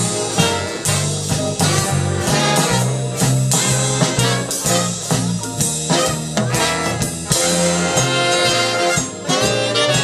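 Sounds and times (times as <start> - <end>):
swing big band playing: 0.0 - 10.0.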